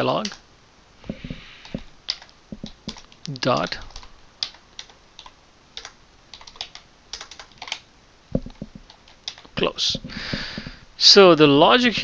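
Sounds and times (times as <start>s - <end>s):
keyboard keystrokes: 1.2s - 7.8s, 8.4s - 9.5s.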